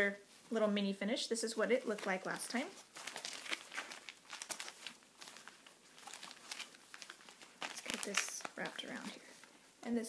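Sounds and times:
stiff fabric rustling and crinkling: 1.6s - 9.8s.

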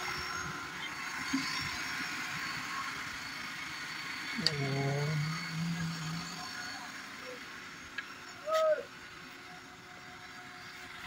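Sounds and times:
car engine idling: 0.0s - 11.0s
low hum: 0.0s - 11.0s.

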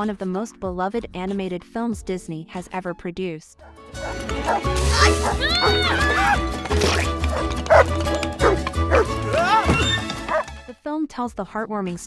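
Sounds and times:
dog yelping and barking: 4.0s - 10.5s.

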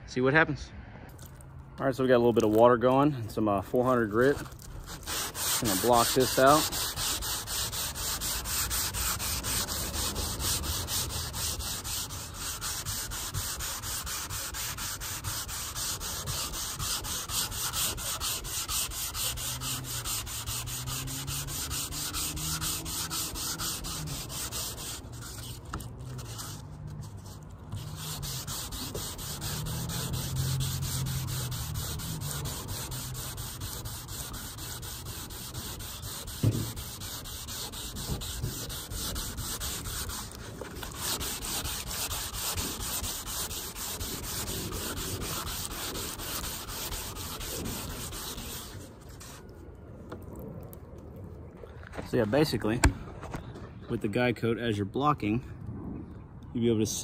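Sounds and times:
sandpaper rubbing back and forth: 3.8s - 49.4s.

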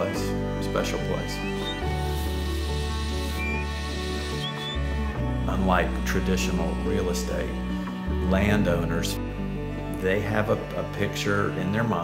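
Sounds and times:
background music: 0.0s - 12.0s
high mouth whistle commands: 1.4s - 2.0s, 3.4s - 3.7s, 4.4s - 4.8s.

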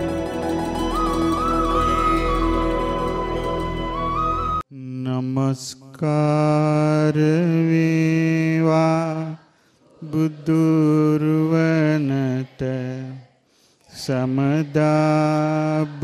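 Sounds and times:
intro music: 0.0s - 4.6s
man chanting into microphone: 4.7s - 9.4s, 10.0s - 13.3s, 13.9s - 16.0s.

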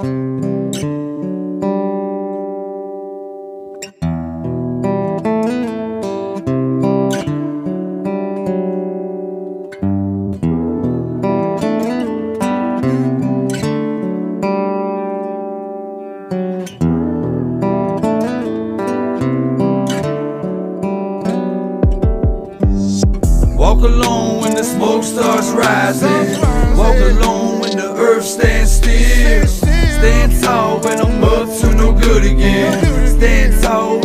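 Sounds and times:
plucked guitar music: 0.0s - 34.0s.

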